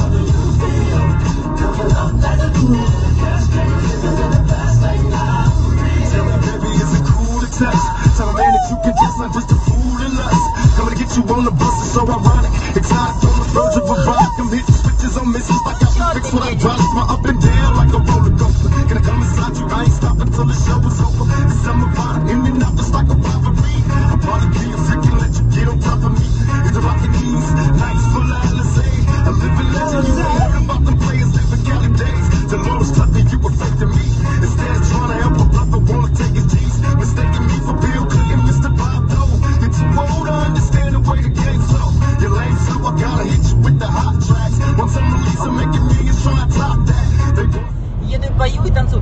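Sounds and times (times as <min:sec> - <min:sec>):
hip hop music on car stereo: 0:00.0 - 0:49.0.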